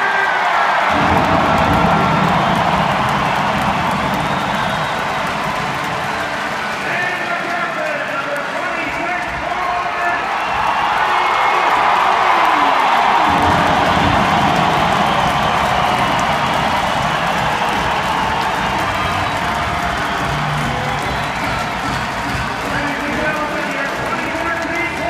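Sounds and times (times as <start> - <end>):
arena crowd cheering: 0.0 - 25.0
music playing: 0.9 - 8.9, 13.2 - 25.0.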